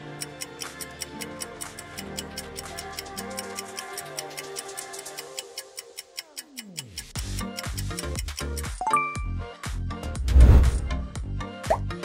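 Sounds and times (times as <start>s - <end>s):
countdown timer ticking: 0.0s - 9.3s
background music sliding down in pitch: 8.8s - 11.8s.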